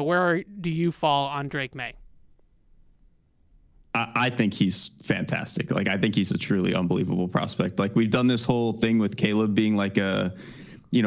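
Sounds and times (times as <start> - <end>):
person speaking: 0.0 - 2.1
faint room hum: 0.0 - 11.0.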